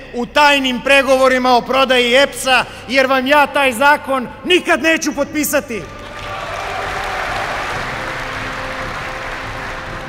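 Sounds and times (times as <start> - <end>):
faint background music: 0.0 - 10.0
large audience applauding: 6.0 - 10.0.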